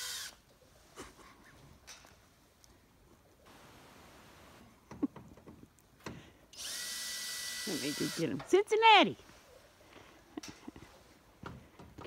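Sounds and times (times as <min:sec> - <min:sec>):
power drill whining: 0:00.0 - 0:00.4, 0:06.5 - 0:08.4.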